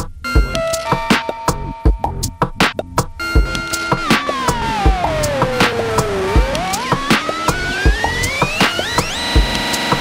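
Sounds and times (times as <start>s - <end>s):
buzzy synthesizer tone sliding: 3.2s - 10.0s.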